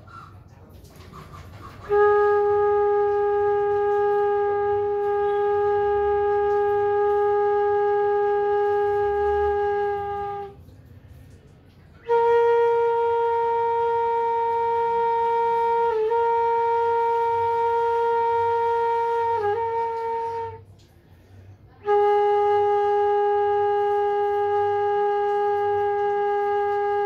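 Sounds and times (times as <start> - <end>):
bamboo flute long notes: 0.0 - 10.7, 11.7 - 27.0.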